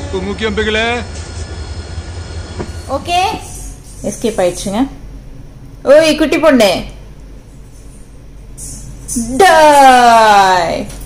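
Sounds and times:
train rumbling and hissing past: 0.0 - 6.0.

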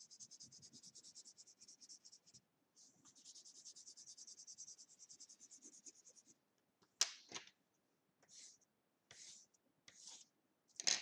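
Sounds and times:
pencil scratching on paper: 0.0 - 6.4, 8.2 - 10.3.

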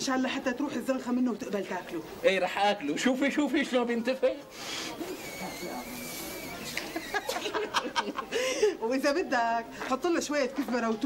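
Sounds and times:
man blowing air into windpipe: 4.5 - 7.2
thin whistle: 5.1 - 7.2.

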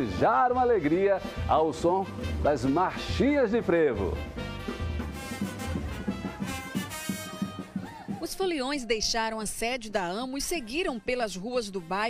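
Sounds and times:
brass band playing: 0.0 - 8.4.

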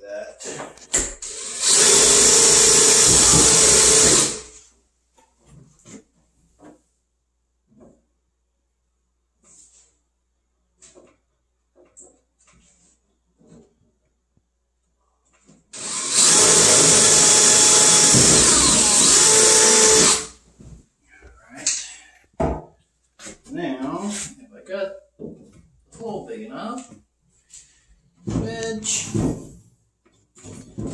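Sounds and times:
cordless drill boring into wood: 1.1 - 4.5, 15.8 - 20.4.

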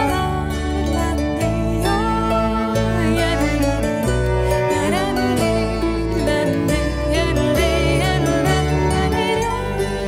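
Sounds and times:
bowed cello: 0.0 - 10.0
harp plucking: 0.0 - 10.0.

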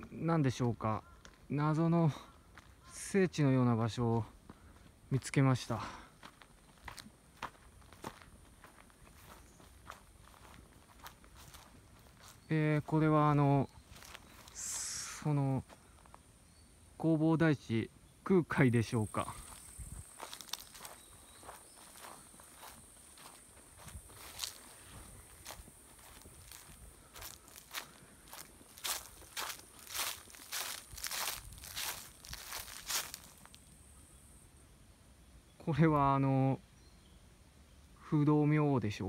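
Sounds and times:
footsteps on grass: 0.6 - 1.6, 2.3 - 3.1, 4.0 - 16.2, 19.2 - 33.8
high insect-like hiss: 2.5 - 37.5.

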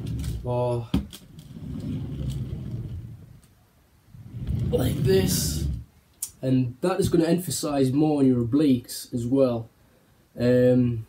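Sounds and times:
ab wheel rolling on hard floor: 0.0 - 3.5, 4.2 - 5.9.

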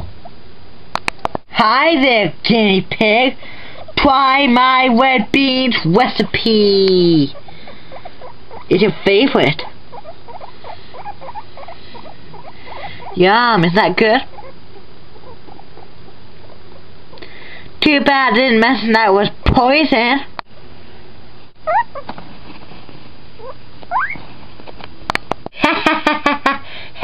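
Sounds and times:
guinea pig squeaking: 5.4 - 17.0, 21.6 - 22.2, 23.4 - 24.2.

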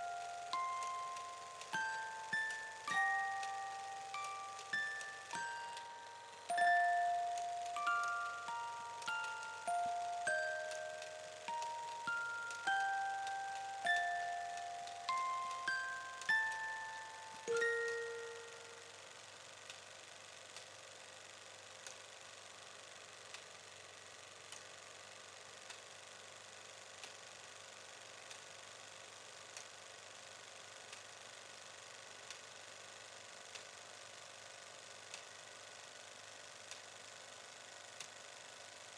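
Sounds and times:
soft ticking: 0.0 - 18.8
ringing chime note: 0.0 - 18.9
faint steady hiss: 0.0 - 38.9.

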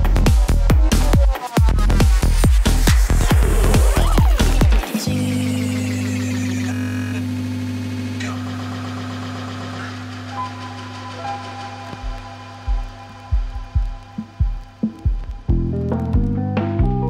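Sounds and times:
deep bass thumps: 0.0 - 4.8, 12.0 - 17.0
low synth drone: 2.2 - 15.8
high held synth tones: 2.8 - 15.5.

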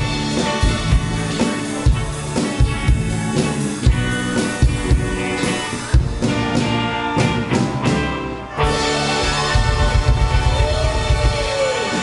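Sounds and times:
drum kit beating: 0.0 - 12.0
electric guitar: 0.0 - 12.0.

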